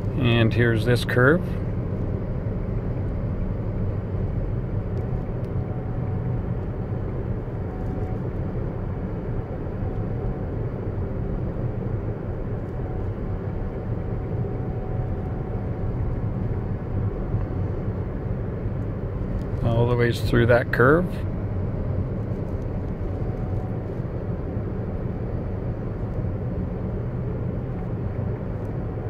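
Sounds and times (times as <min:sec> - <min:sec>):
tyre and road rumble: 0:00.0 - 0:29.0.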